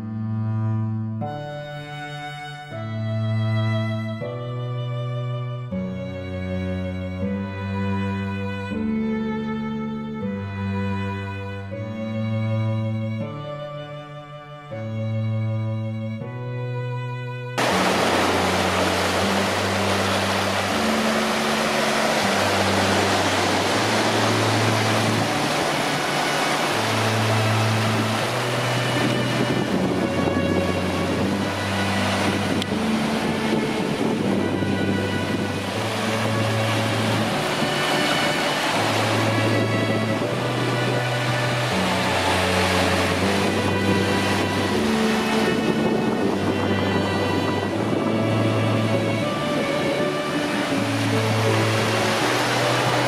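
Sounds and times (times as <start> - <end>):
slow background music: 0.0 - 53.0
surf washing over rocks: 17.6 - 53.0.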